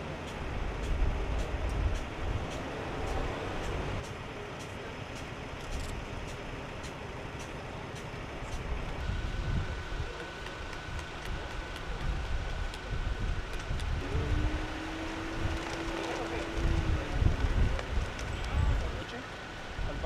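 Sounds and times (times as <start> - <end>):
street noise: 0.0 - 20.0
vehicle engines idling: 0.0 - 20.0
faint steady whine: 4.2 - 20.0.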